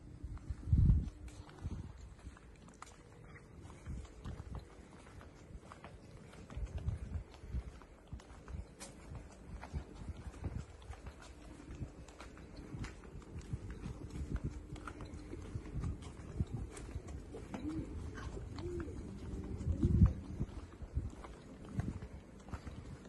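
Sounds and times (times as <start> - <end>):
footsteps on cobblestones: 0.0 - 23.0
pigeon cooing: 16.9 - 20.7.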